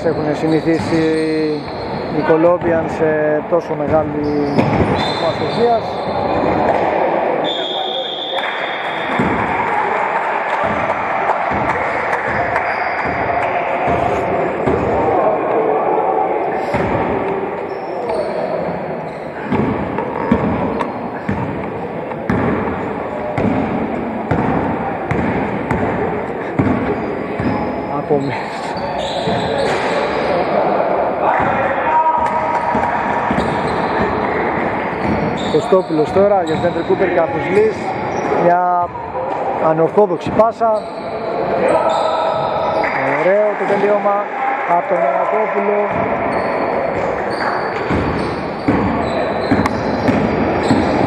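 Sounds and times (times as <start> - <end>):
players' voices: 0.0 - 51.0
basketball bouncing on wooden floor: 19.5 - 21.7, 22.3 - 22.8, 24.3 - 26.0, 47.8 - 51.0.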